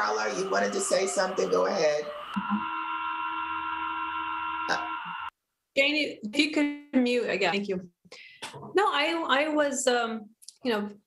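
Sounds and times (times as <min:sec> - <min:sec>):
electronic hum of held tones: 0:00.0 - 0:05.3.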